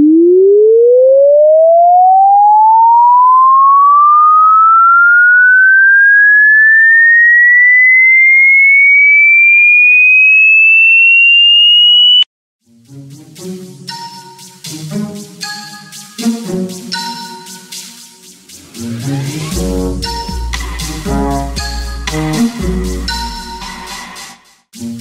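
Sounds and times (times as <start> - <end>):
rising electronic tone sweep: 0.0 - 12.3, 16.9 - 23.9.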